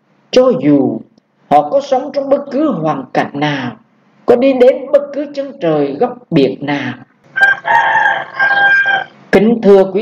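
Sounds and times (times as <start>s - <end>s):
person narrating: 0.3s - 7.1s, 9.3s - 10.0s
high-pitched animal call: 7.3s - 9.2s.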